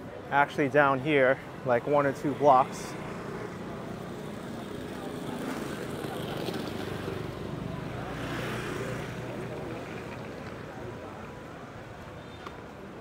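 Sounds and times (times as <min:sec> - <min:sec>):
voices of passers-by: 0:00.0 - 0:13.0
motorbike engines passing: 0:02.2 - 0:13.0.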